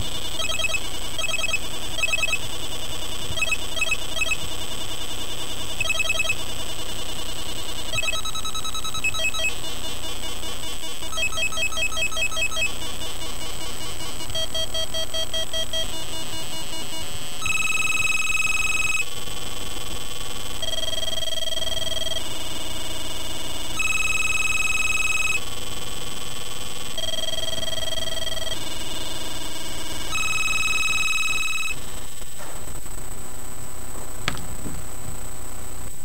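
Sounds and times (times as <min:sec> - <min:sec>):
square-wave electronic tones: 0:00.0 - 0:19.0.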